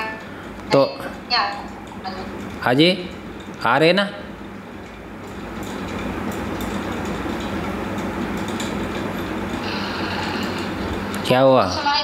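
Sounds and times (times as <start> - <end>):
low hum: 4.3 - 12.0.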